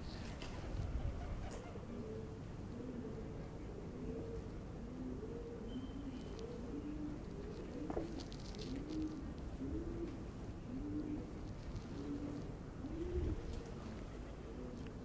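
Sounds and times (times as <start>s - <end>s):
pigeons cooing: 0.0s - 15.0s.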